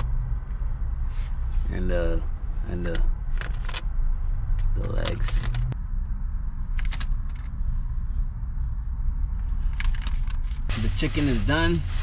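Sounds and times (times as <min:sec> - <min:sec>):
steady low rumble: 0:00.0 - 0:12.0
plastic bag crackling: 0:10.7 - 0:12.0.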